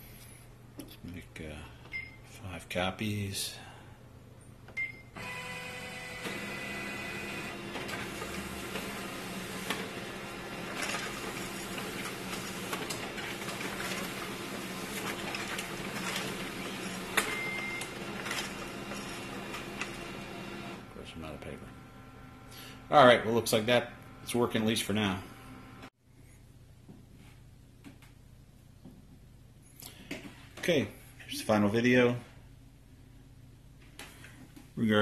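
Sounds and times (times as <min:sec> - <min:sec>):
printer paper feed clicks: 0:05.2 - 0:20.8
printer motors whirring: 0:05.2 - 0:22.5.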